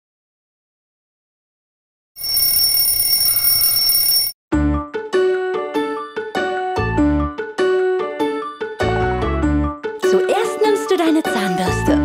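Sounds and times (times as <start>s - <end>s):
alarm clock ringing: 2.2s - 4.4s
bright children's music: 4.6s - 12.0s.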